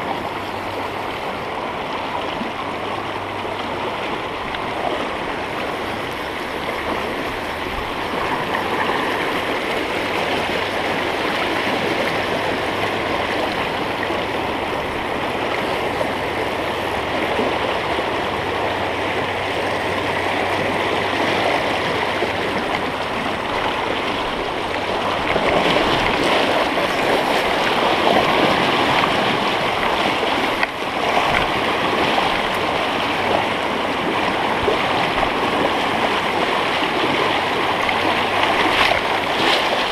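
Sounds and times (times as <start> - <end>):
river running over stones: 0.0 - 39.9.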